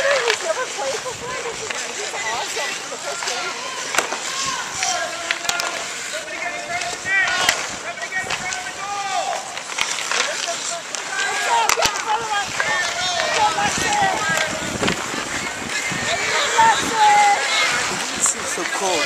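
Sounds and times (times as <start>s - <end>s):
hockey sticks and puck clacking: 0.0s - 19.0s
people shouting: 0.0s - 19.0s
skates scraping ice: 0.0s - 19.0s.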